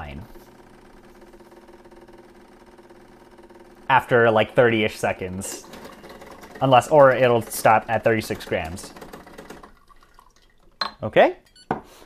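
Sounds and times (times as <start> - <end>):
espresso machine humming: 0.2 - 9.7.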